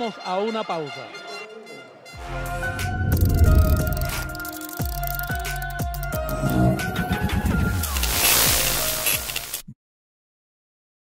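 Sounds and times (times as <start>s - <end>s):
logo music sting: 2.2s - 4.6s.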